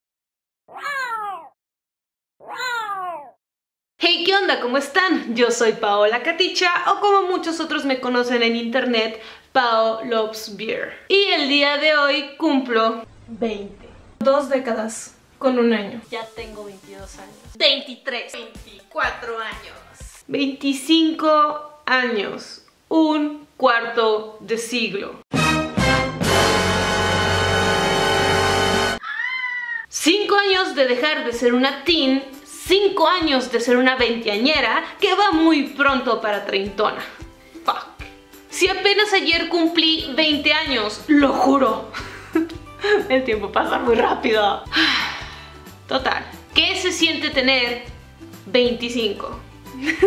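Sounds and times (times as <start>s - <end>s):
cat meowing: 0.7s - 1.5s, 2.4s - 3.4s, 29.0s - 29.9s
loud music: 25.3s - 29.0s.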